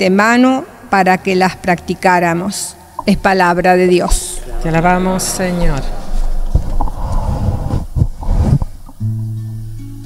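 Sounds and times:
cloth rubbing on microphone: 4.1 - 9.0.

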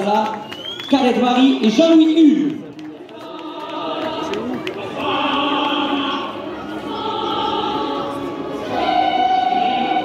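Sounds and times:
choir singing: 3.1 - 10.0.

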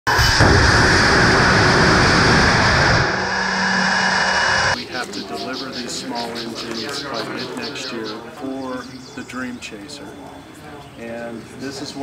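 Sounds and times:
rocket engine roaring: 0.1 - 4.8.

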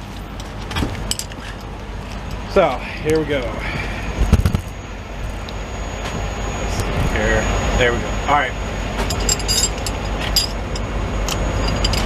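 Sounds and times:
low background rumble: 0.0 - 12.0
metal hand tools clinking: 9.1 - 12.0.

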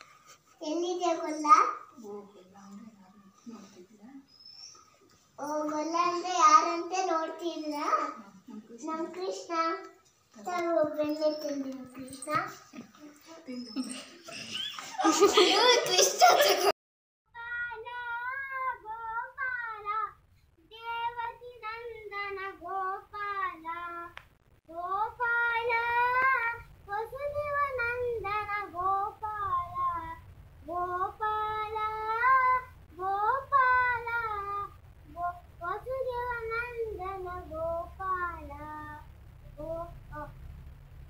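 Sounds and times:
boy singing: 17.4 - 20.1, 20.7 - 39.0.

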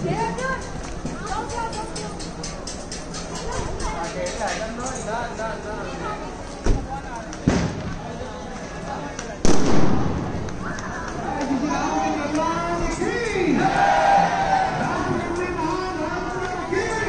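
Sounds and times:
people's voices: 0.0 - 17.0
firecracker bangs: 7.4 - 8.1, 9.4 - 10.8.

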